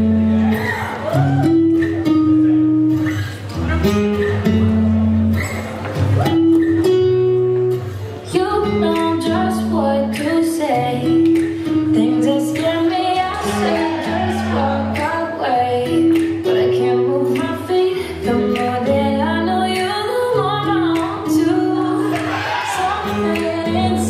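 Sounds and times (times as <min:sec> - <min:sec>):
song over loudspeakers: 0:08.3 - 0:24.0.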